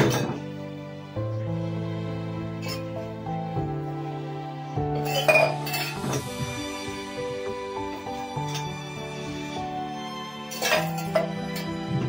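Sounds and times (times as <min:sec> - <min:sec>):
metal dishes clinking: 0:00.0 - 0:00.4, 0:02.6 - 0:02.9, 0:05.0 - 0:06.2, 0:10.5 - 0:11.3
music with sustained tones: 0:00.0 - 0:12.0.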